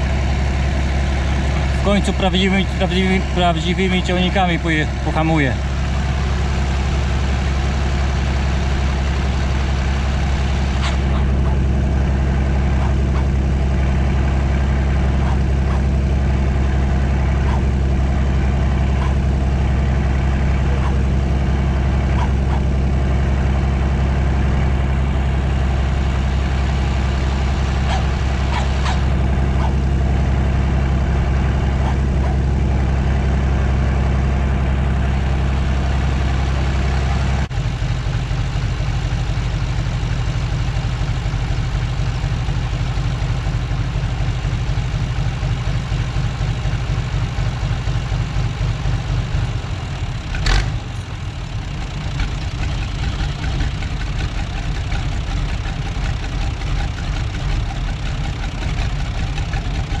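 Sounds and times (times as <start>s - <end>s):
tractor diesel engine running: 0.0s - 60.0s.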